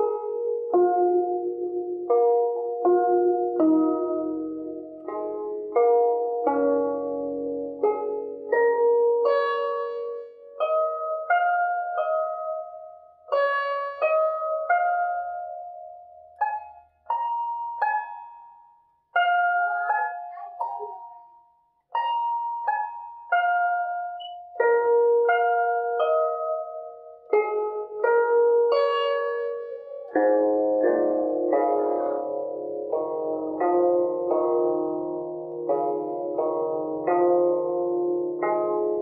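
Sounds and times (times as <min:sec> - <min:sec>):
zither notes plucked slowly: 0:00.0 - 0:39.0.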